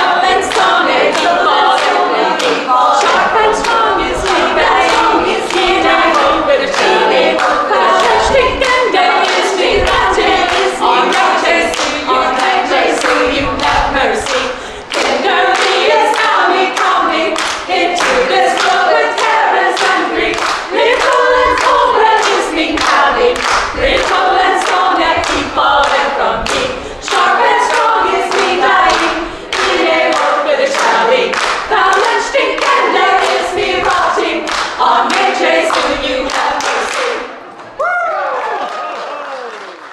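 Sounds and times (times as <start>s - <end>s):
hands clapping in rhythm: 0.0s - 37.4s, 38.4s - 39.9s
women's choir singing: 0.0s - 37.5s.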